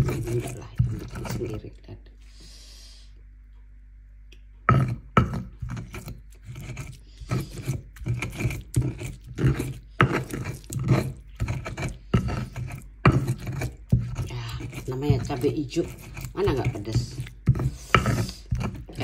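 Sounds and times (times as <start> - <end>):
stone pestle grinding paste: 0.0 - 1.8, 4.6 - 19.0.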